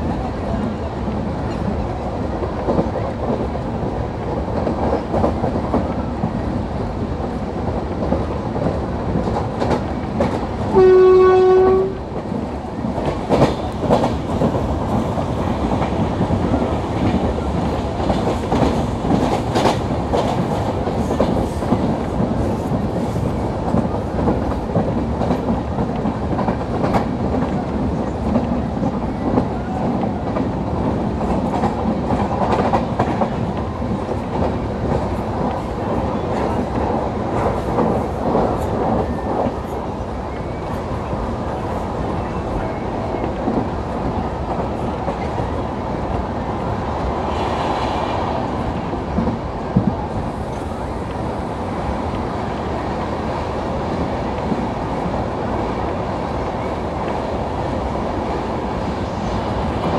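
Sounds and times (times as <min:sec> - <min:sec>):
passenger coach running noise: 0:00.0 - 0:59.9
locomotive horn blast: 0:10.7 - 0:12.0.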